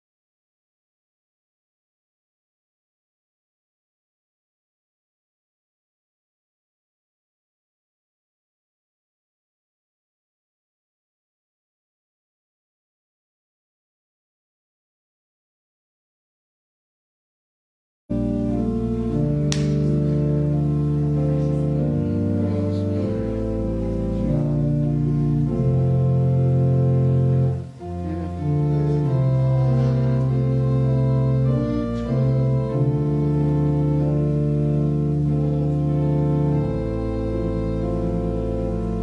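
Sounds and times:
organ playing sustained chords: 18.1s - 39.0s
small click: 19.5s - 19.8s.

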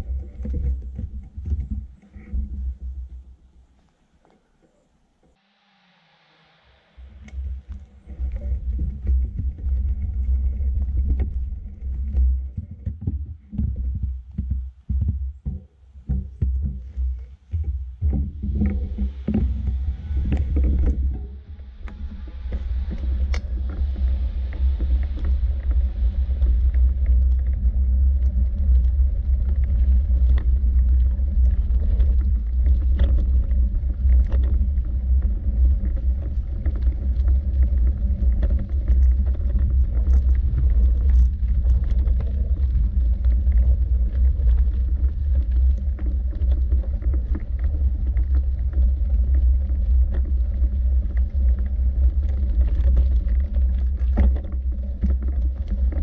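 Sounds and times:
loud low rumble: 17.6s - 54.7s.

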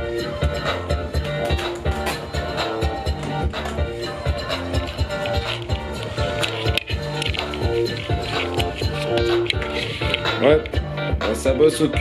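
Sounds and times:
drum machine beat: 0.2s - 11.3s.

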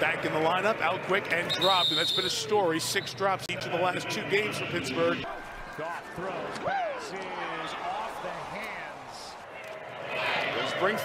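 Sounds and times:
stadium background noise: 0.0s - 11.0s.

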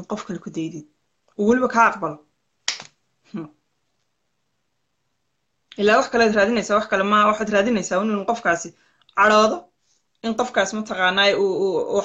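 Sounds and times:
woman's voice: 0.0s - 2.3s, 5.7s - 12.0s.

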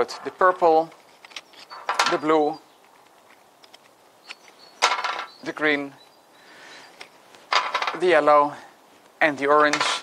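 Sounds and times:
rings clattering together: 1.2s - 2.3s, 4.8s - 5.4s, 7.5s - 8.0s.

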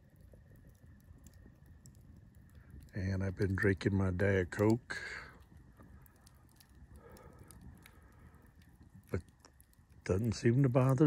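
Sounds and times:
campfire crackling and popping: 0.0s - 11.0s.

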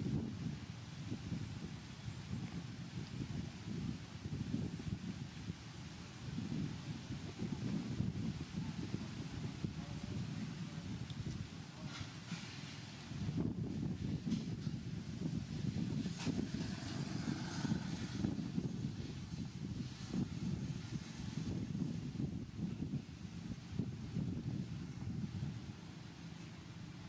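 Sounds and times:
low uneven rumble: 0.0s - 27.0s.

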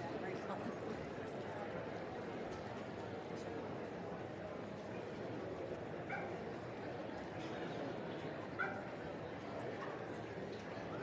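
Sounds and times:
crowd hubbub in a hall: 0.0s - 11.0s.

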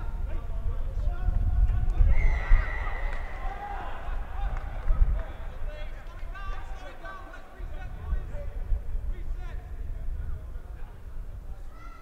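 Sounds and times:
players shouting: 1.0s - 8.1s.

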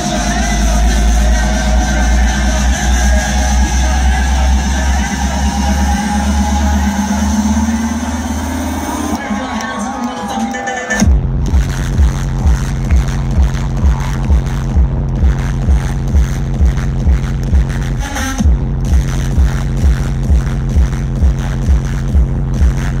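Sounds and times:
deep pulsing bassline: 0.0s - 9.9s, 10.6s - 23.0s
electronic dance music: 0.0s - 23.0s
heavy kick drum: 11.0s - 23.0s.

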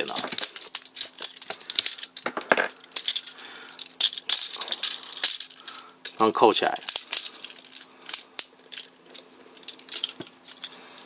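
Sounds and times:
plastic toy parts clicking: 0.0s - 8.9s.

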